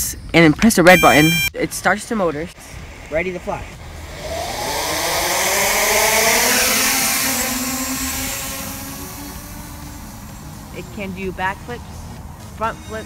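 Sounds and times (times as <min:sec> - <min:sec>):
drone propellers buzzing whine: 0:03.8 - 0:11.0.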